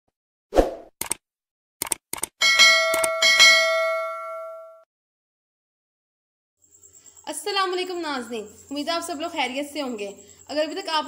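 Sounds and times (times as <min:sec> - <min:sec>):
sharp mouse clicks: 0:01.8 - 0:02.3
notification bell chime: 0:02.5 - 0:04.8.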